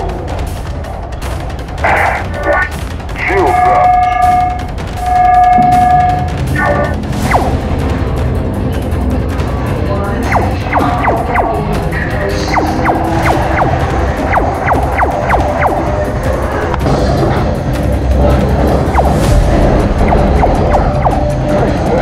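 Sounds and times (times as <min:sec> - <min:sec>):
loud music with heavy bass: 0:01.8 - 0:08.5, 0:10.2 - 0:22.0.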